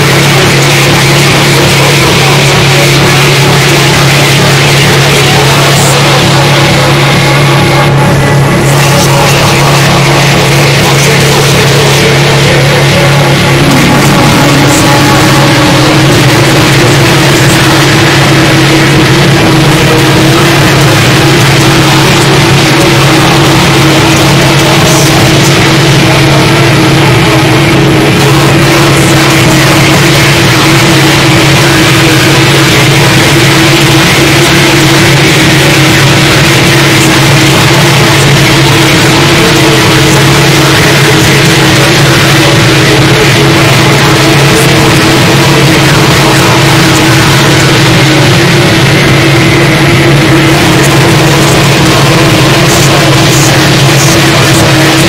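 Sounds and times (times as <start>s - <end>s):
harsh noise music: 0.0s - 55.0s
higher droning tone: 0.0s - 55.0s
low drone: 0.0s - 55.0s.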